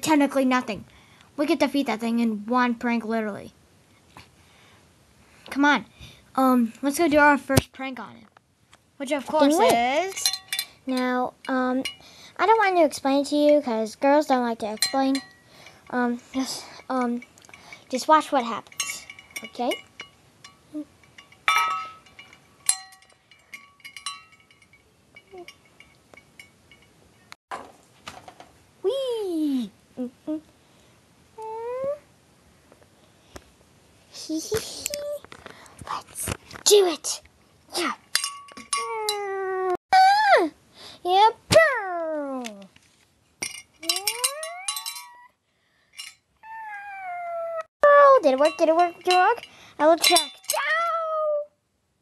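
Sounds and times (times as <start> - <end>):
small hard objects clinking: 43.4 - 45.2
cat meowing: 46.4 - 47.7.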